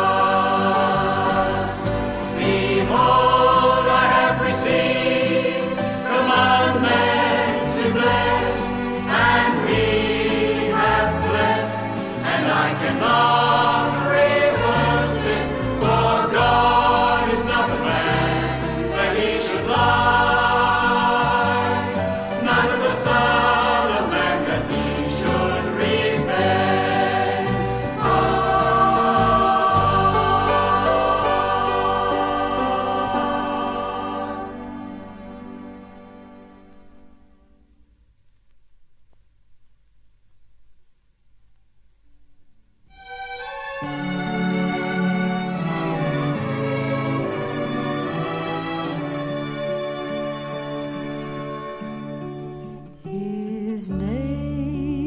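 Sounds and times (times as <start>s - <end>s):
group singing in chorus: 0.0s - 35.2s
instrumental accompaniment with bass: 0.0s - 37.3s.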